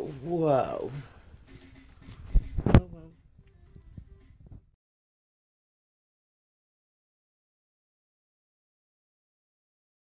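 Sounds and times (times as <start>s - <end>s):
phone microphone thumps: 2.3s - 3.0s.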